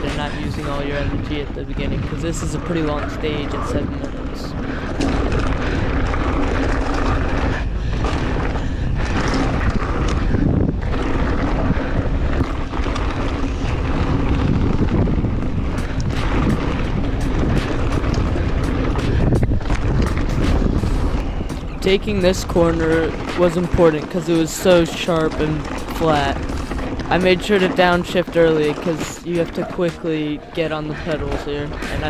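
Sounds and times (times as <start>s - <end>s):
bike clicking and rattling: 0.0s - 32.0s
tyres rolling over gravel: 0.0s - 32.0s
wind on microphone: 0.0s - 32.0s.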